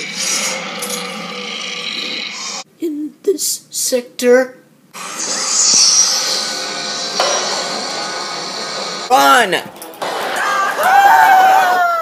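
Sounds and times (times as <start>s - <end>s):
long rough robot growl: 0.0s - 2.6s.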